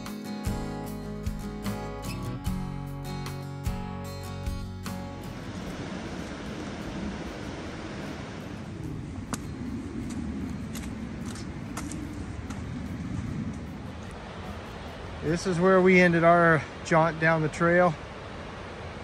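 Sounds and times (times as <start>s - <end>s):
outdoor rushing noise: 5.2s - 16.9s
footsteps on rocky ground: 9.3s - 13.7s.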